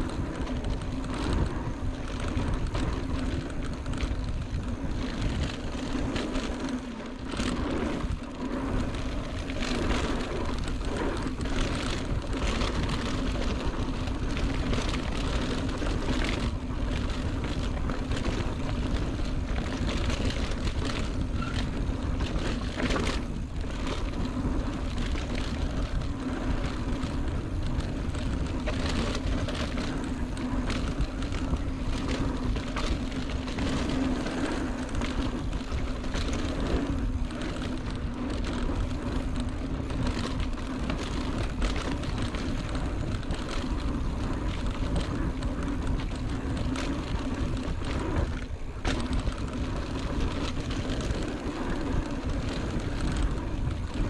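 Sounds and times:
bike knocks and rattles: 0.0 - 54.0
tyre and wind rush: 0.0 - 54.0.

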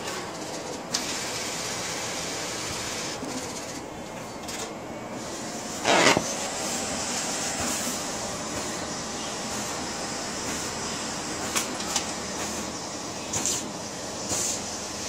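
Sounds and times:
inkjet printer running: 0.0 - 15.0
loud scrape: 5.8 - 6.3.

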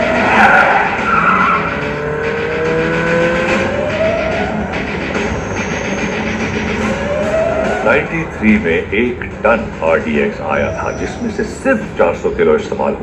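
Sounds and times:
rising whining glides: 0.0 - 8.3.

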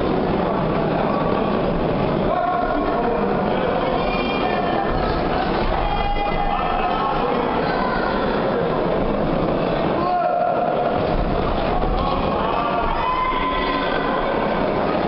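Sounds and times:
crowd din in a hall: 0.0 - 15.0
spectators shouting: 11.8 - 14.9.

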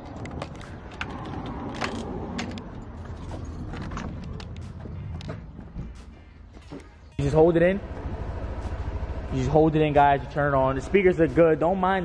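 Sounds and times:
footsteps on tiled floor: 0.0 - 7.2.

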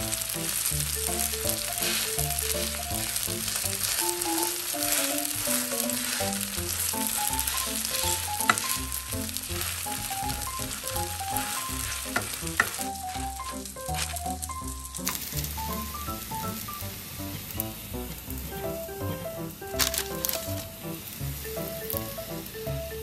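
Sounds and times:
pancakes sizzling in hot oil: 0.0 - 23.0.

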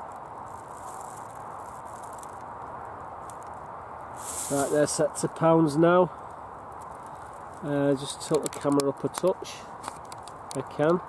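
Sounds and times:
steady background noise: 0.0 - 11.0.

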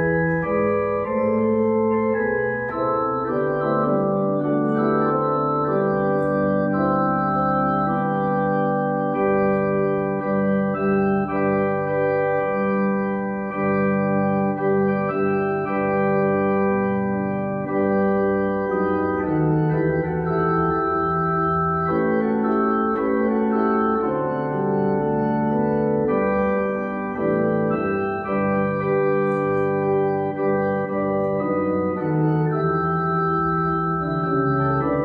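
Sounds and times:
organ chords on keyboard: 0.0 - 35.0.

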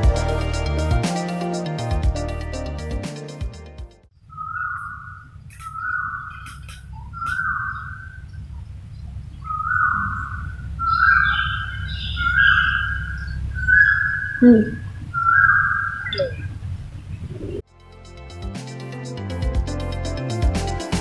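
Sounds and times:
bird whistling: 4.3 - 8.3, 9.4 - 16.5
high chattering bird call: 4.3 - 17.6
steady low rumble: 6.2 - 17.6.

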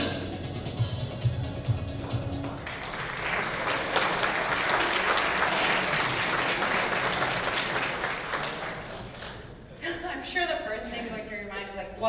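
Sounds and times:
video music: 0.0 - 2.6
audience applauding: 2.0 - 9.5.

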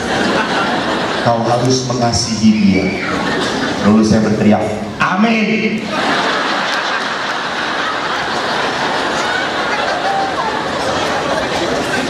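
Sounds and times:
audience crowd noise: 0.0 - 12.0.

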